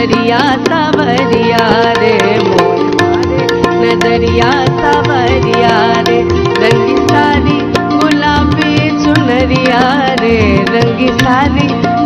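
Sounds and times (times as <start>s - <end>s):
tabla: 0.0s - 12.0s
woman singing: 0.0s - 12.0s.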